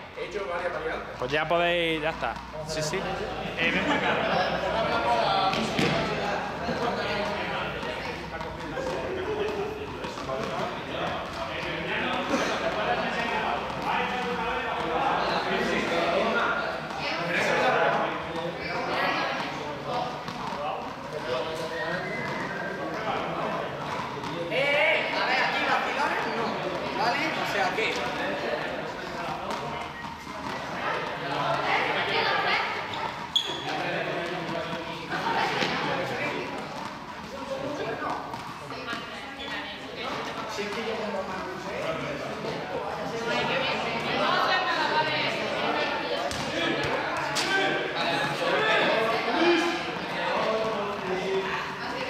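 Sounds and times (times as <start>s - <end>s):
chatter of many voices echoing: 0.0s - 52.0s
balls thudding on floor: 5.5s - 6.2s, 46.2s - 47.5s.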